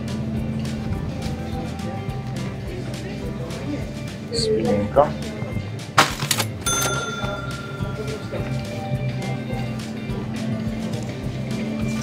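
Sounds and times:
background music: 0.0s - 12.0s
cash register ka-ching: 6.0s - 8.8s.

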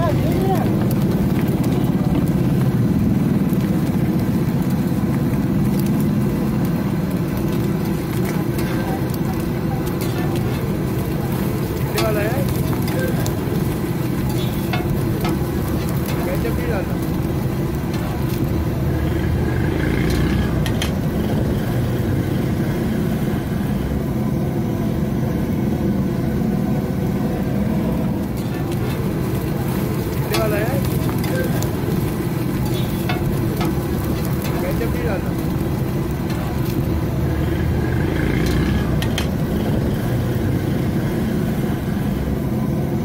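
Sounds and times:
background voices: 0.0s - 23.5s, 27.8s - 41.8s
food frying on griddle: 0.0s - 43.0s
low rumble: 0.0s - 43.0s.

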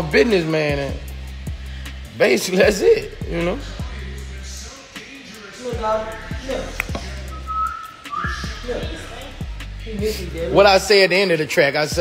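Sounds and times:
hip-hop beat with deep bass: 0.0s - 12.0s
thin high whistling tone: 7.0s - 9.2s.

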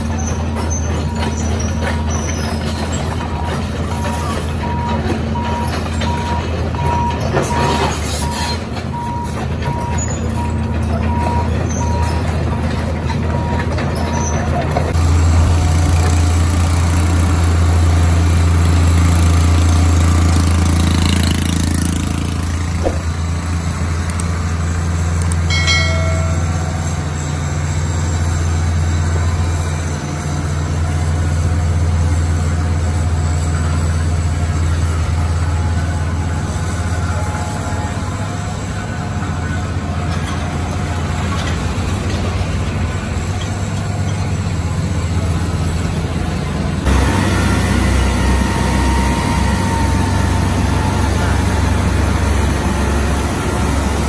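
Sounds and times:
diesel machinery engine drone: 0.0s - 54.0s.

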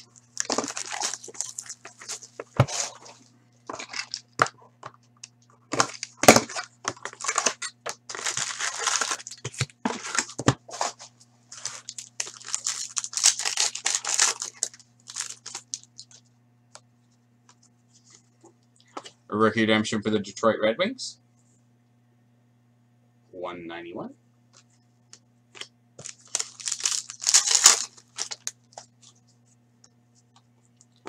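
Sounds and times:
card pack wrappers tearing and crinkling: 0.0s - 4.5s, 5.7s - 10.9s, 11.5s - 16.2s, 25.6s - 29.1s
low steady hum: 0.0s - 31.0s.

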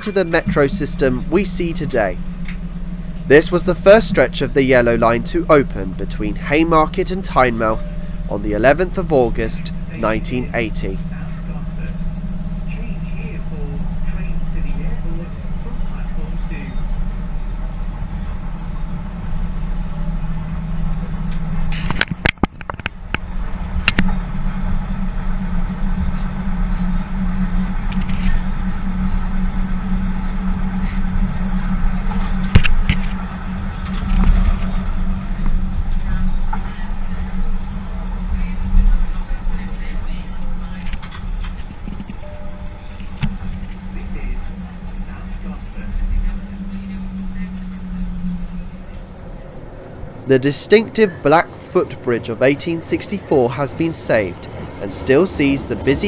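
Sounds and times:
train running along track: 0.0s - 56.0s.

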